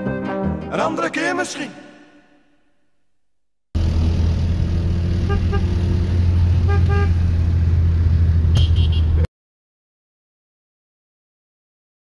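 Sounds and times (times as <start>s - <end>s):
car driving drone: 3.8s - 9.2s
car horn toots: 5.2s - 5.8s, 6.6s - 7.3s, 8.5s - 9.3s.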